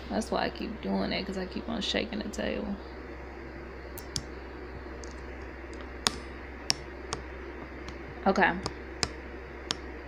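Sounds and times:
low steady hum: 0:00.0 - 0:10.0
sharp short clicks and taps: 0:06.0 - 0:08.0.

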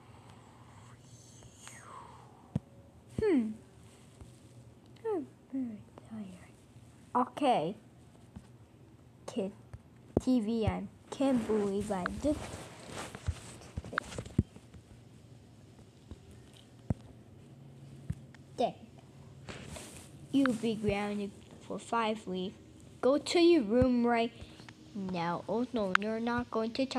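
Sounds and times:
faint whispering: 0:00.0 - 0:02.6, 0:05.6 - 0:06.7
low steady hum: 0:00.0 - 0:26.9
person speaking: 0:10.2 - 0:14.3, 0:20.3 - 0:26.9.

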